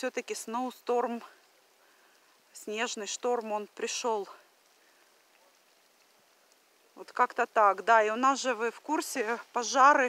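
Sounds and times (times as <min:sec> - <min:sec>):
faint outdoor hiss: 0:00.0 - 0:10.0.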